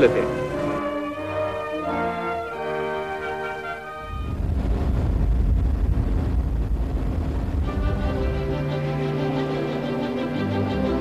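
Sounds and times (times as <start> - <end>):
orchestral music: 0.0 - 4.5, 7.5 - 11.0
road noise: 3.8 - 9.6.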